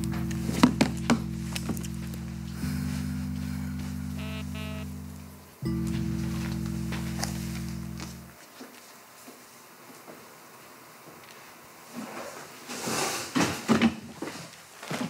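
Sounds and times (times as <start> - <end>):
held low music chord: 0.0 - 8.4.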